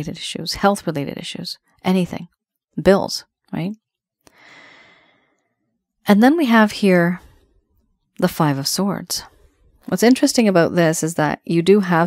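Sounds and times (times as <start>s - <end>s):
soft breath: 4.3s - 5.6s.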